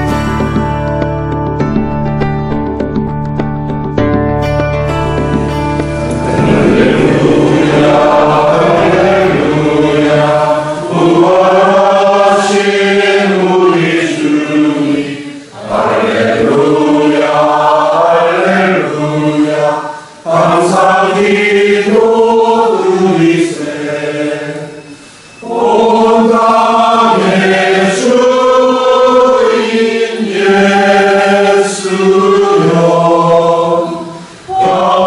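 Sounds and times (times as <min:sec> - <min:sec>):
congregation singing: 0:05.8 - 0:35.0.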